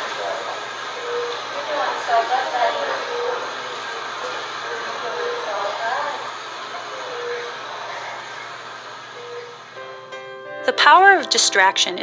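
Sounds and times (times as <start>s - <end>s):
equipment hiss and hum: 0.0s - 12.0s.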